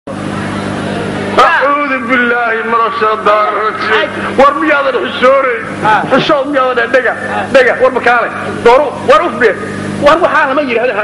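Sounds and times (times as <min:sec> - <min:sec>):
man speaking into a microphone: 0:01.4 - 0:11.0.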